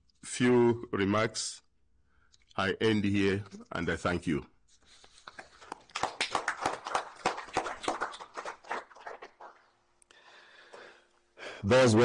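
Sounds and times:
small group applauding: 0:05.2 - 0:09.8.

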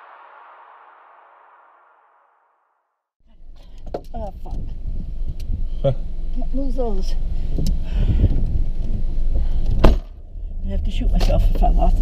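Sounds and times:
car driving rumble from cabin: 0:03.3 - 0:12.0.

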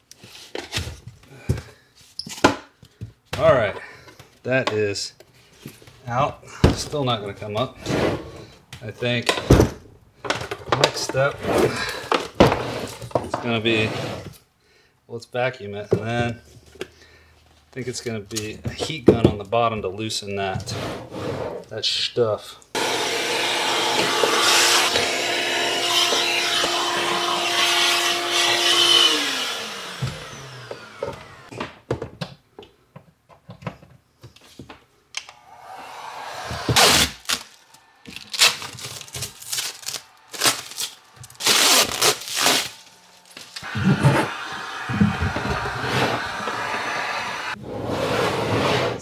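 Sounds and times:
shop vacuum running: 0:22.8 - 0:31.5, 0:35.3 - 0:38.2, 0:39.1 - 0:48.5.

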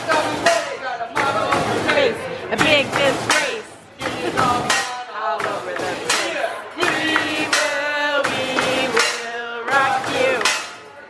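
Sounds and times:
sharp clack: 0:02.9 - 0:09.4, 0:10.0 - 0:10.8.

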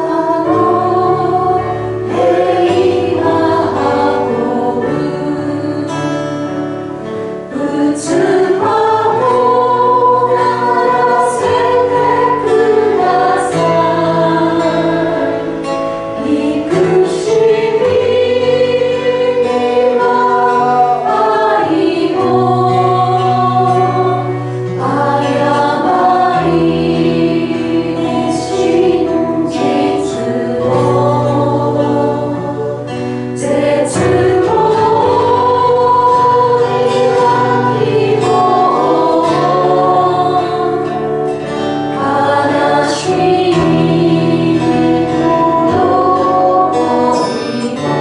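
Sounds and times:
voices singing slowly: 0:00.0 - 0:48.0.

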